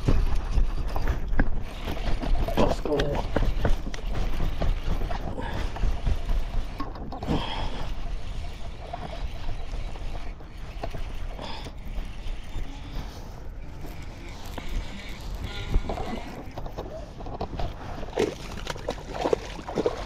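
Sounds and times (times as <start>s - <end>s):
wind rumbling on microphone: 0.0s - 20.0s
water sloshing against kayak: 0.6s - 20.0s
fish splashing: 17.8s - 20.0s.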